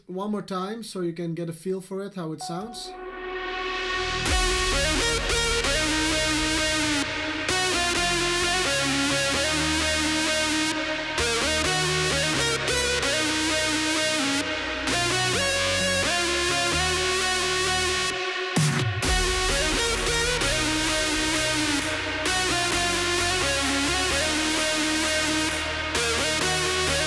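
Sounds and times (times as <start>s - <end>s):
electronic dance music: 2.4s - 27.0s.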